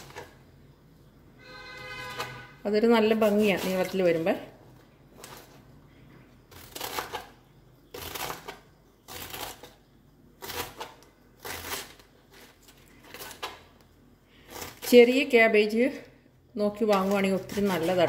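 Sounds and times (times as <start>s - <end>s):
knife slicing cabbage on board: 16.9s - 18.0s.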